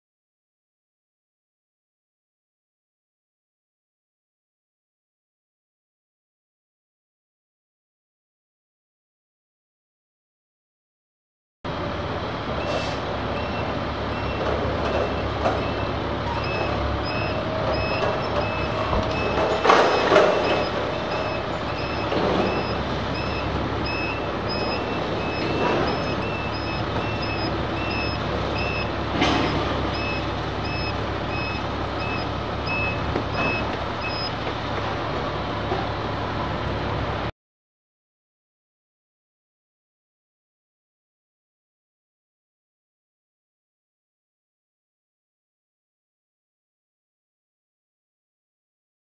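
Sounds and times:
truck engine rumble: 0:11.7 - 0:37.3
reversing alarm beeping: 0:12.6 - 0:34.5.

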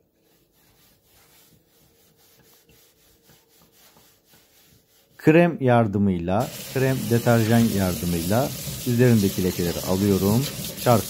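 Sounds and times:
sponge scrubbing plastic: 0:00.0 - 0:05.5, 0:06.4 - 0:11.0.

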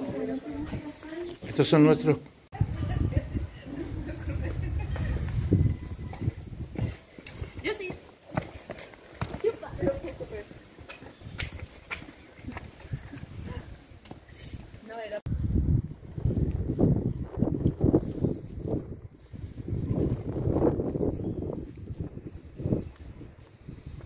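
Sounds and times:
wind rumbling on microphone: 0:00.0 - 0:01.2, 0:02.5 - 0:08.5, 0:09.2 - 0:24.0
voices: 0:00.0 - 0:06.5
footsteps on stone path: 0:00.0 - 0:15.3, 0:16.0 - 0:24.0.

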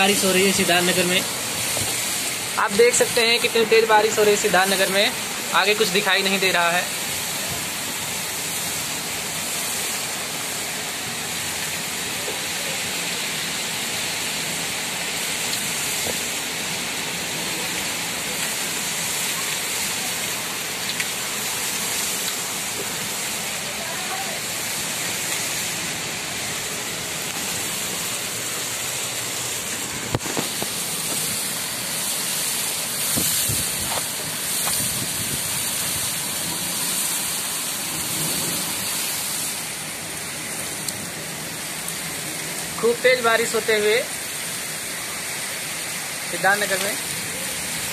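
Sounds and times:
heavy rain on roofs: 0:00.0 - 0:47.9.

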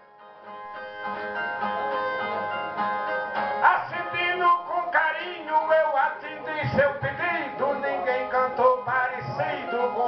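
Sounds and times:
man singing: 0:03.6 - 0:10.0.

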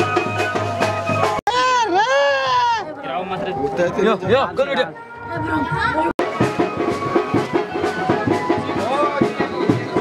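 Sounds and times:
people chattering: 0:01.5 - 0:10.0.

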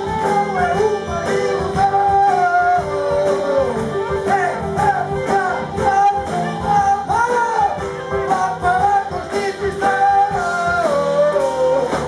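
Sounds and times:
drums: 0:00.0 - 0:12.0
wavering lead melody: 0:00.0 - 0:12.0.

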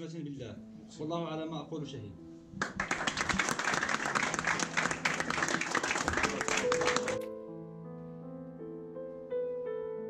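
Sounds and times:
group of people clapping: 0:02.6 - 0:07.2.

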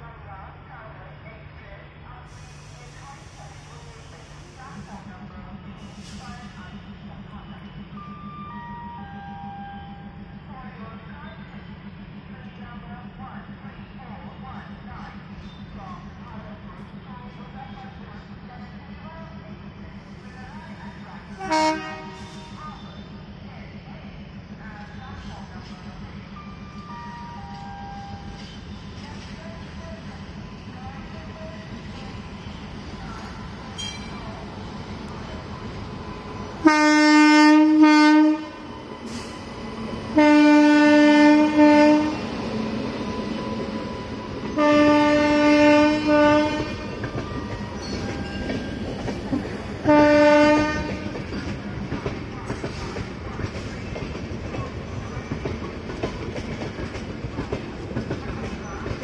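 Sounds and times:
train coaches clickety-clack: 0:02.3 - 0:08.1, 0:08.8 - 0:59.0
locomotive horn blast: 0:21.4 - 0:22.6, 0:36.6 - 0:38.6, 0:40.2 - 0:42.2, 0:44.6 - 0:47.0, 0:49.9 - 0:51.2.

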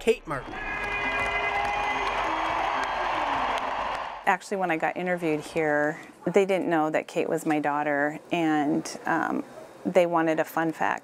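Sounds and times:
arena crowd cheering: 0:00.0 - 0:04.4.

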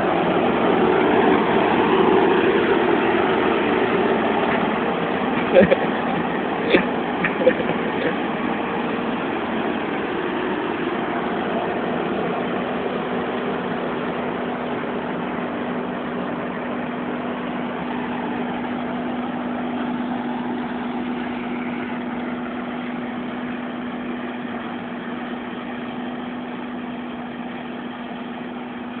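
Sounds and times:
combine harvester drone: 0:00.0 - 0:29.0.

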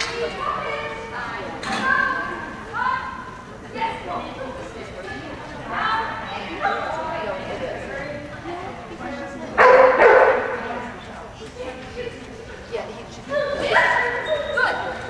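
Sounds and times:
people's voices: 0:00.0 - 0:15.0
dog barking: 0:09.6 - 0:10.6.

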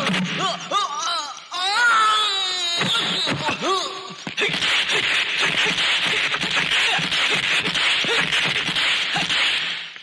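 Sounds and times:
sharp whip-like hits: 0:04.4 - 0:10.0.

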